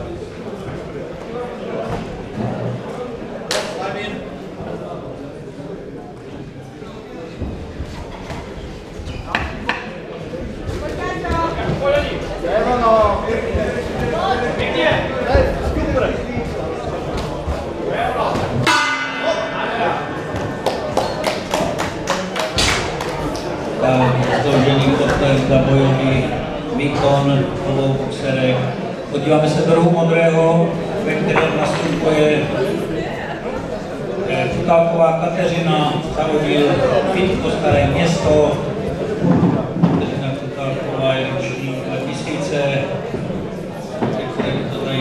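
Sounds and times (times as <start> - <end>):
voices chattering in a hall: 0.0 - 45.0
bell strike ringing: 18.7 - 20.1.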